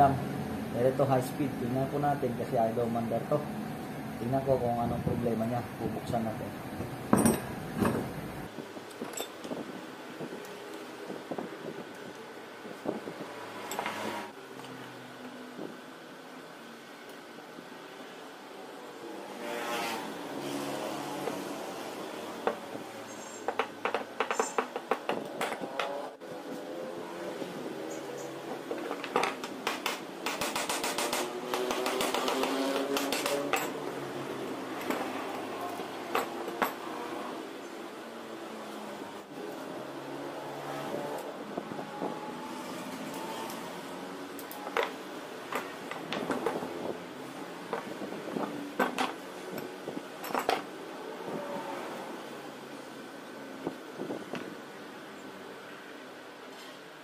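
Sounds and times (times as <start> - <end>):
tools set down on wooden bench: 7.1 - 8.1
metal parts clinking and knocking: 7.1 - 8.2, 8.9 - 9.5, 23.5 - 26.0, 28.7 - 33.9, 48.8 - 50.7.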